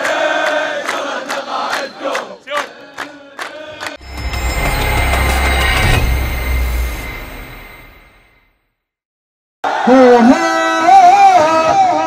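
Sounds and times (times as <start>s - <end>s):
deep rumbling swell: 4.0s - 8.5s
news intro music: 4.0s - 8.6s.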